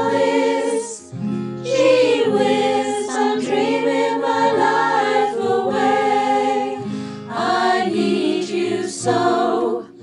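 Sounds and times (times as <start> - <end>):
choir singing in harmony: 0.0 - 10.0.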